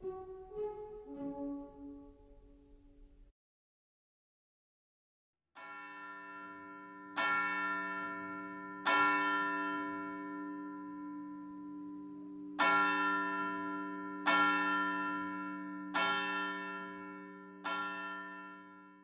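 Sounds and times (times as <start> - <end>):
church bell tolling: 5.6 - 19.0.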